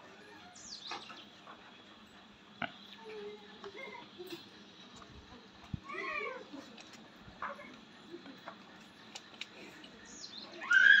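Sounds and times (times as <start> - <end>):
high-pitched animal call: 10.6 - 11.0.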